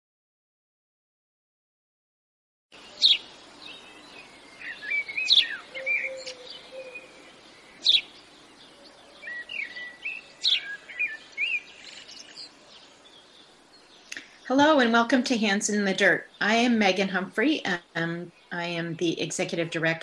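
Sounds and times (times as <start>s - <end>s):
background hiss: 2.7s - 20.0s
birds chirping: 2.7s - 20.0s.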